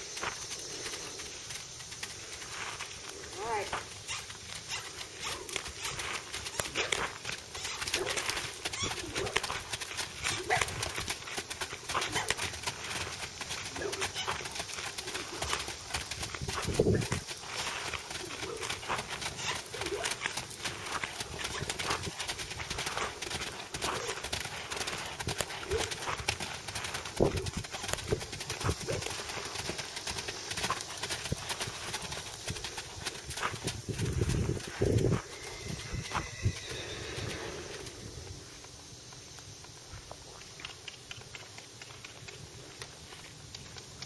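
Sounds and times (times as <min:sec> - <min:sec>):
horse hooves trotting on sand: 0:00.0 - 0:44.0.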